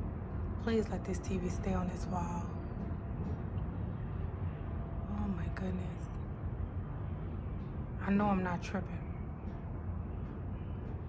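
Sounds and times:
low rumble: 0.0s - 11.0s.

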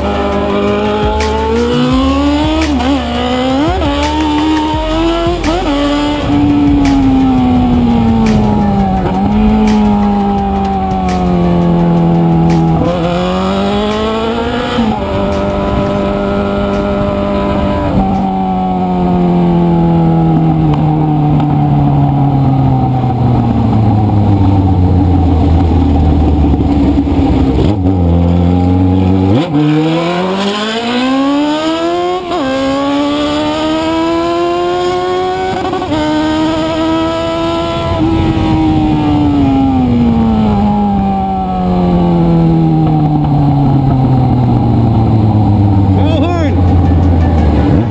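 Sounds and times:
motorcycle engine revving through gears: 0.0s - 47.9s.

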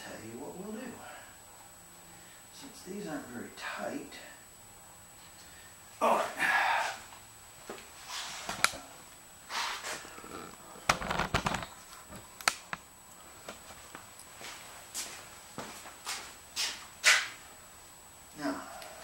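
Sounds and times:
clicks and knocks of handling things: 10.9s - 12.8s.

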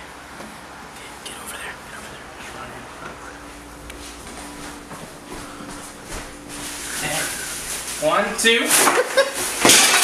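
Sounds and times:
faint steady hum: 0.0s - 10.0s
footsteps: 2.4s - 9.6s.

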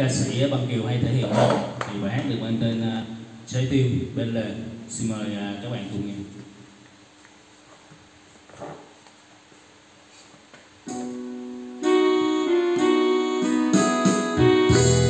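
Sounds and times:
electronic keyboard chords and melody: 10.9s - 15.0s
deep bass: 14.4s - 15.0s.

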